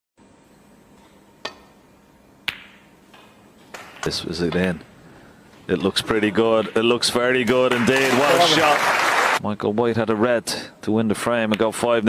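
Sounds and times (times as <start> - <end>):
hushed arena ambience: 0.2 - 12.0.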